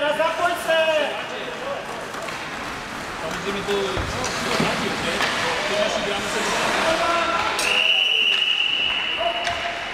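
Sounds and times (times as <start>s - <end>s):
referee's whistle blast: 7.6s - 9.5s.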